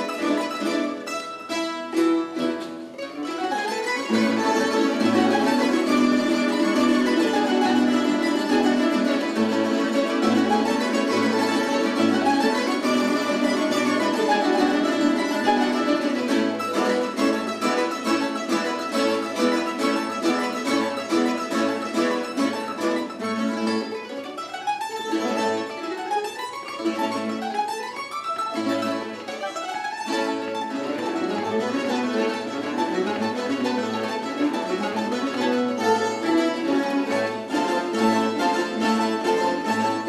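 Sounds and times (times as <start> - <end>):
plectrum orchestra playing: 0.0 - 24.0, 30.1 - 40.0.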